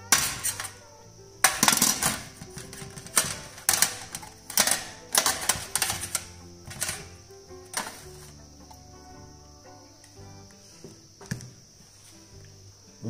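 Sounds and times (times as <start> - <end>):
background music: 0.0 - 13.0
metal instruments clinking on tray: 1.4 - 7.1, 7.7 - 8.0.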